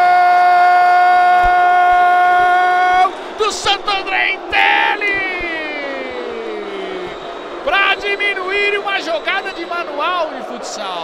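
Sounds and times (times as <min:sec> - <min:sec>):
man speaking excitedly: 0:01.9 - 0:06.2, 0:07.6 - 0:11.0.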